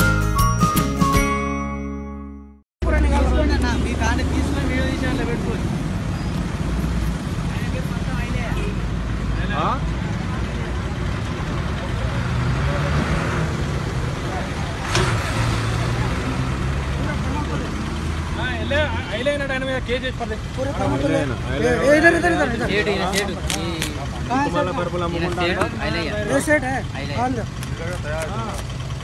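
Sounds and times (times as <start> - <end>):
people talking: 2.8 - 5.7, 17.0 - 28.6
vehicle engine rumbling: 2.8 - 29.0.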